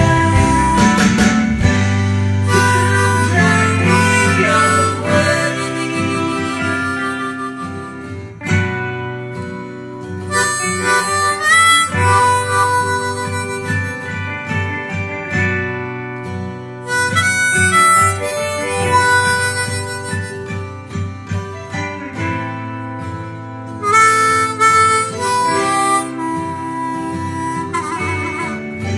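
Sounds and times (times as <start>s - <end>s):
harmonica melody: 0.0s - 28.9s.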